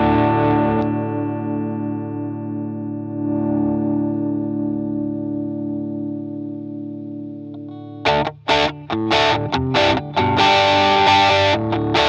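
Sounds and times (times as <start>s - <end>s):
choppy strummed guitar chords: 0.0s - 6.0s, 6.8s - 12.0s
overdriven electric guitar chord: 0.0s - 12.0s.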